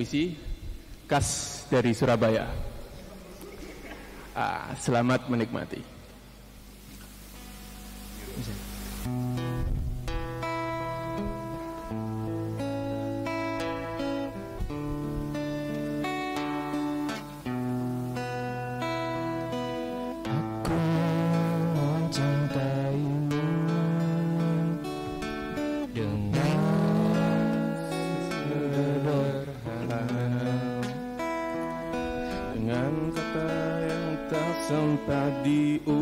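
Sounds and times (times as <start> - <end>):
acoustic guitar: 0.0 - 36.0
man singing: 20.2 - 36.0.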